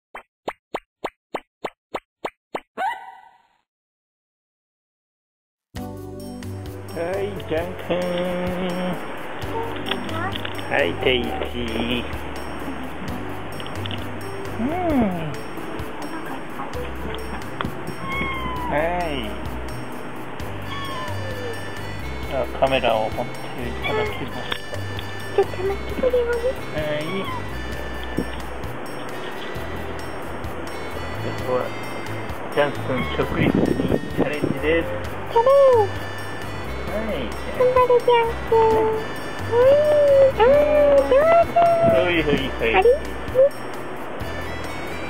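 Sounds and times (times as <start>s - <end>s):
rising tone: 12.2s - 22.4s
cat meowing softly: 18.0s - 18.8s, 20.6s - 21.6s, 27.0s - 27.6s.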